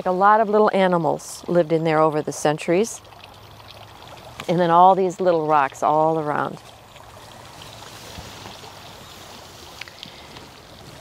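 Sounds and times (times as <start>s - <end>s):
fountain trickling: 0.0s - 11.0s.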